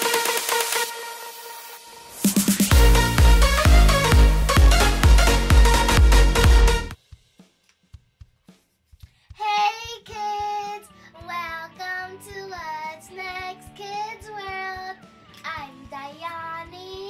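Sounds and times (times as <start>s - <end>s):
backing music with steady beat: 0.0s - 9.4s
child singing: 9.4s - 17.0s.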